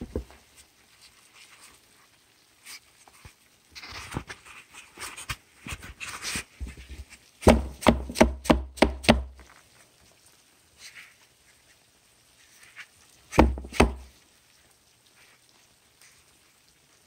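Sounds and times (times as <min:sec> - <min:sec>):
cardboard knocking on plastic tub: 0:07.4 - 0:09.4, 0:13.3 - 0:14.1.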